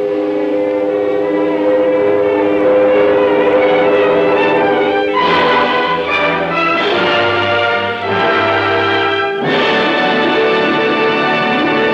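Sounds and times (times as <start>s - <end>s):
orchestral music sustained chords: 0.0s - 11.9s.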